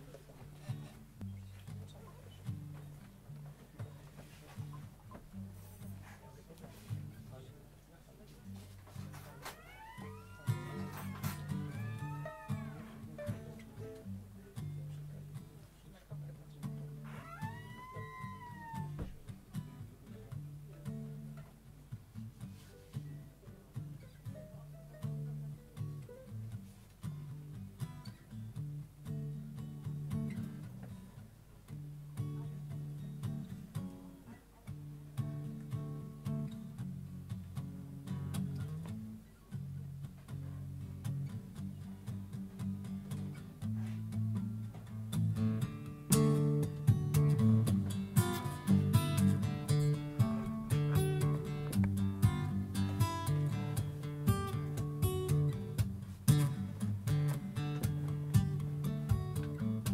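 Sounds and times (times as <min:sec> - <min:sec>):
acoustic guitar strumming: 0:08.6 - 0:15.5, 0:16.6 - 0:59.9.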